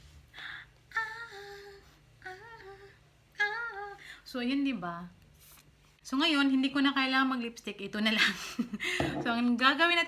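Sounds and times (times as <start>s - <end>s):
woman singing wordless phrases: 0.9s - 5.1s.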